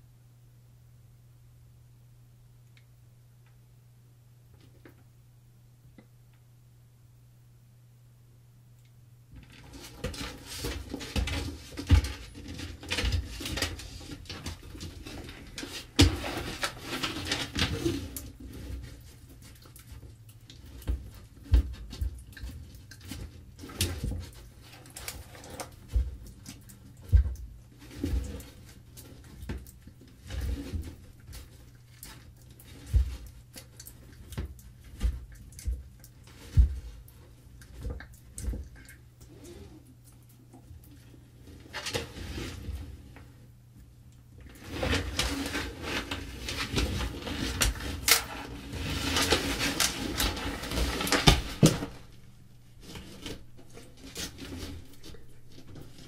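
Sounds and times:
low steady hum: 0.0s - 56.0s
iguana chewing carrot: 9.6s - 41.7s.

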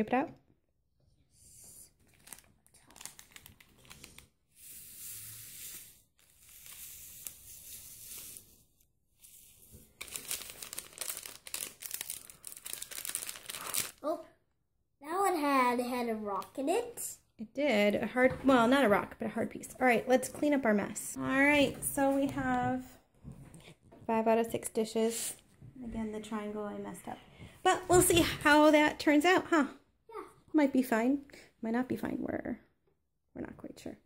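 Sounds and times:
plastic cup crinkling: 2.0s - 8.5s, 9.2s - 14.0s.

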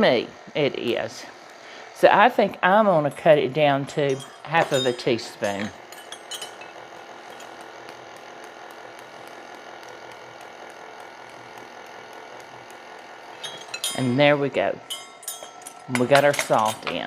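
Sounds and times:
room hum: 0.0s - 17.0s
metal spoons clinking: 3.9s - 7.6s, 13.4s - 14.3s, 14.9s - 17.0s.

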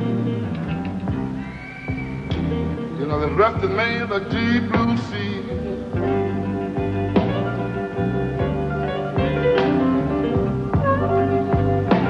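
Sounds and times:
electric blues band playing live: 0.0s - 12.0s.

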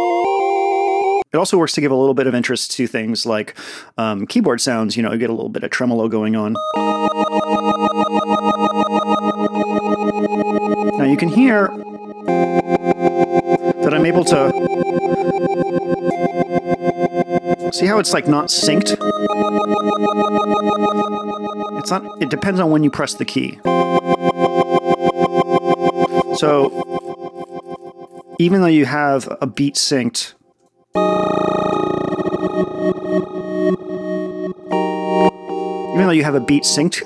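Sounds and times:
synthesizer chord with tremolo: 6.6s - 28.8s, 31.0s - 37.0s.

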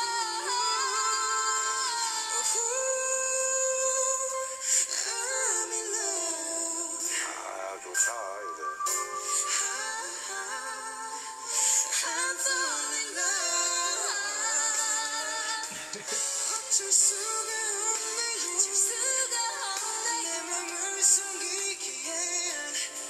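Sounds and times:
backing music: 0.0s - 23.0s
man and woman singing: 0.0s - 23.0s.

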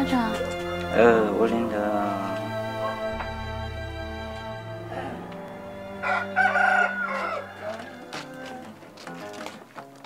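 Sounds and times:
rooster crowing: 5.8s - 8.9s.

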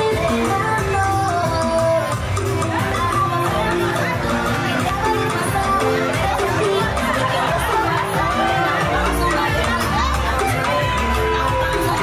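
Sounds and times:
dance music: 0.0s - 12.0s
guests whooping and cheering: 1.5s - 12.0s.

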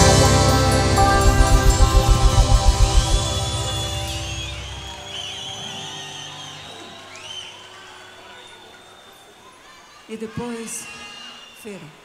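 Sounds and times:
band drumbeat: 0.0s - 5.0s
last chord ringing: 0.0s - 5.2s
audience whistling: 0.0s - 9.6s, 10.7s - 12.0s.

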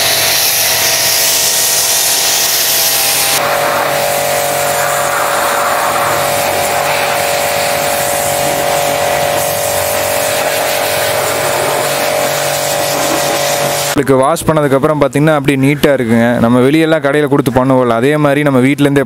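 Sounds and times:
hiss of spray: 0.0s - 14.0s
pressure washer motor hum: 0.0s - 14.0s.

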